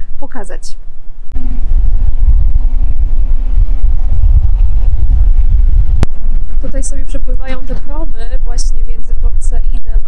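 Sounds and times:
faint steady hum: 0:00.0 - 0:10.0
wind buffeting microphone: 0:00.0 - 0:10.0.

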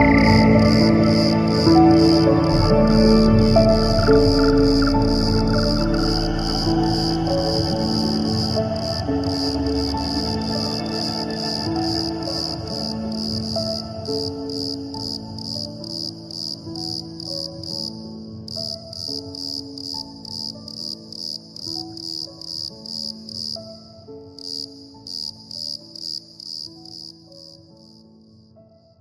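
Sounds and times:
crickets chirping: 0:00.0 - 0:28.0
soft slow piano notes: 0:00.0 - 0:29.0.

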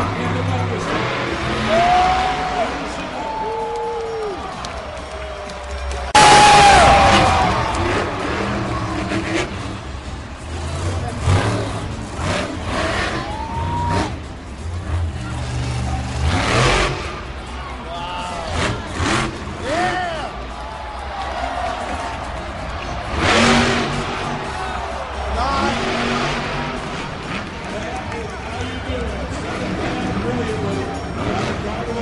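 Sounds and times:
monster truck engine revving: 0:00.0 - 0:32.0.

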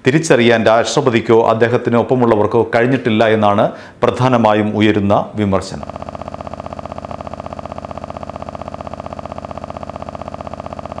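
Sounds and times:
pulsing synthesizer drone: 0:05.8 - 0:11.0.

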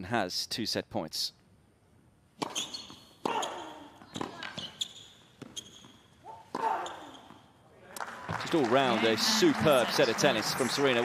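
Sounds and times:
tennis ball bouncing: 0:02.4 - 0:04.8.

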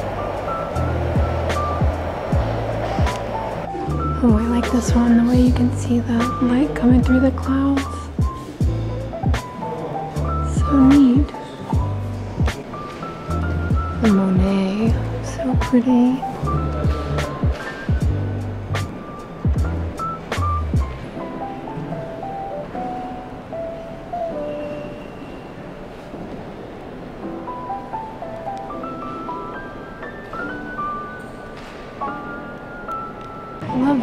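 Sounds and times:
percussion hits: 0:00.0 - 0:06.4, 0:10.9 - 0:15.8, 0:16.8 - 0:21.1
low bass notes: 0:00.0 - 0:09.4, 0:16.4 - 0:21.1
instrumental background music: 0:00.0 - 0:25.0, 0:27.2 - 0:34.0.

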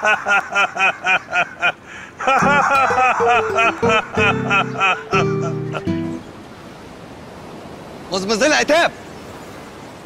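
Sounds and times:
sea waves on shore: 0:00.0 - 0:10.0
held music chord: 0:02.4 - 0:06.4.

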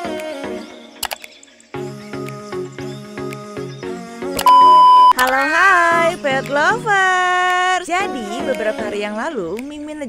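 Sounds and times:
background music repeating notes: 0:00.0 - 0:09.7
loud high test tone beep: 0:04.4 - 0:05.2.

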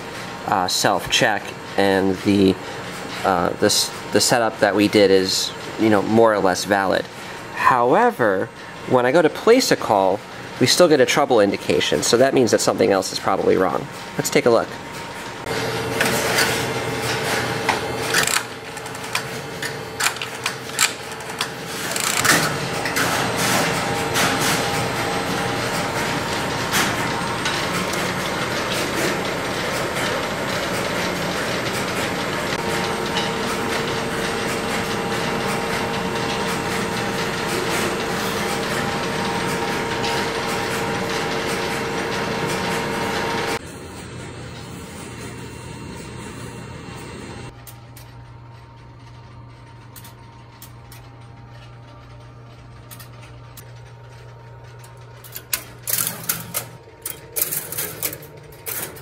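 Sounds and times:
relays clicking and clattering: 0:10.6 - 0:43.6, 0:47.5 - 0:59.0.

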